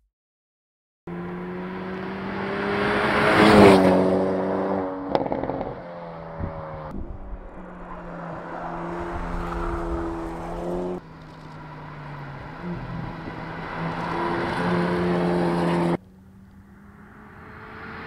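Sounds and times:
car engine driving past: 0:01.1 - 0:18.0
exhaust pop: 0:06.4 - 0:11.5.

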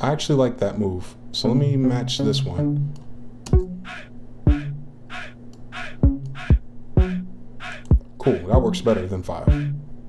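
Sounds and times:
hip-hop beat: 0:03.5 - 0:09.9
low synth bass notes: 0:06.0 - 0:07.4.

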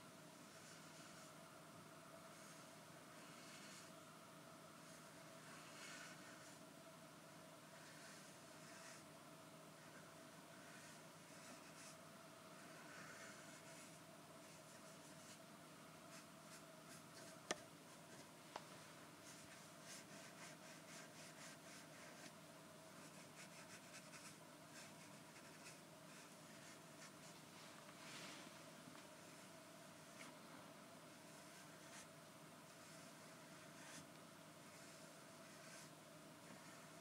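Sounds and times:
pen scratching on paper: 0:02.3 - 0:03.9, 0:04.8 - 0:06.6, 0:07.6 - 0:09.0, 0:09.8 - 0:12.0, 0:12.6 - 0:15.4, 0:19.2 - 0:22.3, 0:23.0 - 0:27.3, 0:31.3 - 0:32.1, 0:32.7 - 0:37.0.

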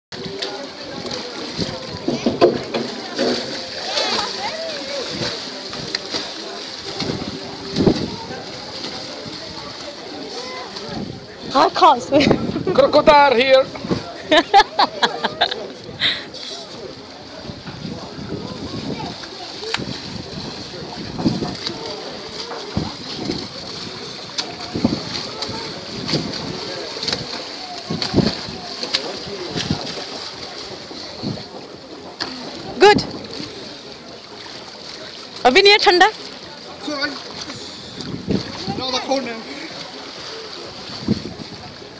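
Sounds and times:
swimmer splashing: 0:00.2 - 0:41.9
waves washing: 0:00.2 - 0:41.9.

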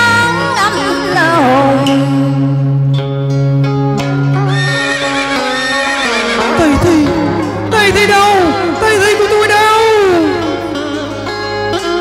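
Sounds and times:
instrumental backing music: 0:00.0 - 0:12.0
horse whinny sound effect: 0:04.5 - 0:06.6.

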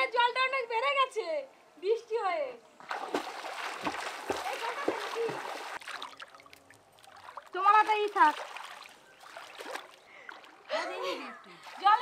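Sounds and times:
person swimming splashing water: 0:02.8 - 0:12.0.

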